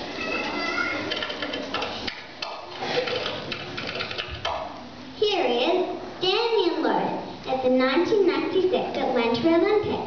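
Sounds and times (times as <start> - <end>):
indistinct children's voices: 0.0 - 4.2, 5.1 - 10.0.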